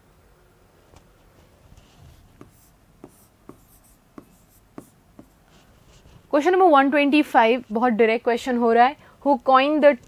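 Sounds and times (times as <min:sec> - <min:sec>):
writing scratching on board: 0:01.8 - 0:06.2
writing tip tapping board: 0:02.4 - 0:05.4.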